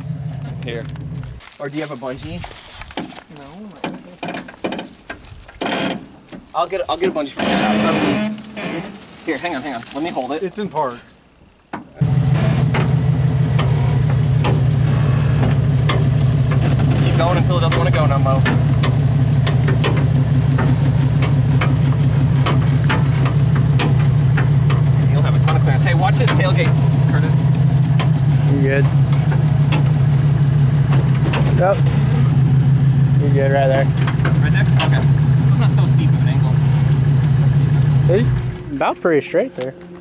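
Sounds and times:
car engine idling: 0.0 - 10.6, 11.9 - 40.0.

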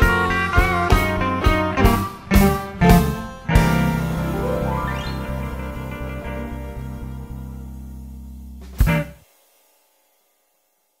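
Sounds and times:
blues band closing chord: 0.3 - 9.1.

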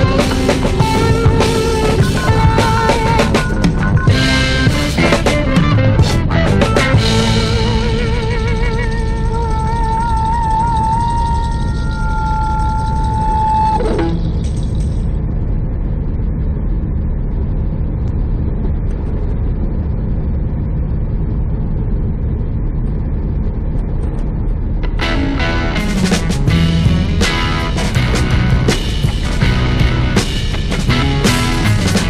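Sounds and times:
song with held wavering note: 0.0 - 14.8, 24.8 - 32.0.

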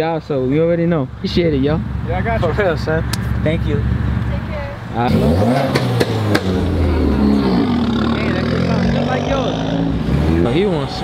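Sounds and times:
car engine revving: 1.9 - 11.0.

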